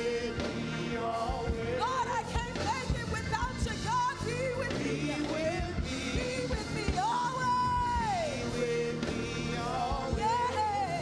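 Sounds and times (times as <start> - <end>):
backing band with steady beat: 0.0 - 11.0
woman singing gospel song: 0.0 - 11.0.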